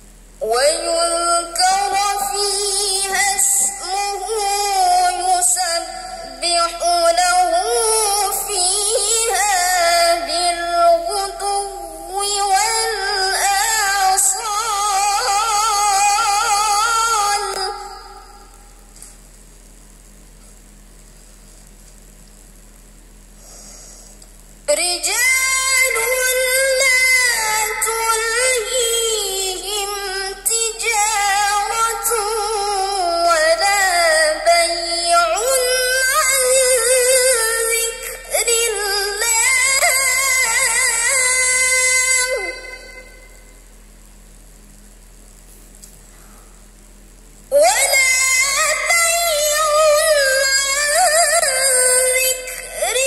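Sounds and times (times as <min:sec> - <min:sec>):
melodic recitation through microphone: 0:00.0 - 0:19.2, 0:24.7 - 0:43.8, 0:47.4 - 0:53.0
faint hiss: 0:00.0 - 0:53.0
low electrical hum: 0:00.0 - 0:53.0
reciter drawing breath: 0:23.4 - 0:24.3, 0:45.5 - 0:46.7.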